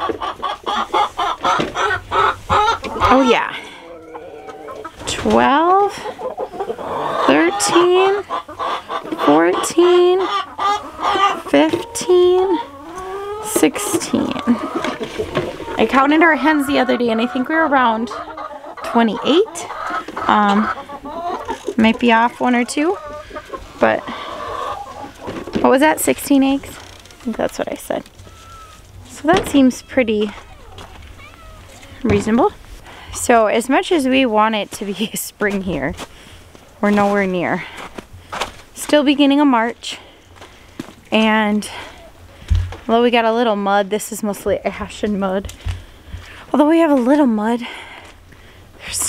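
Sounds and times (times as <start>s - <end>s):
hen squawking: 0.0s - 25.3s, 28.2s - 28.9s
hens clucking: 0.0s - 48.3s.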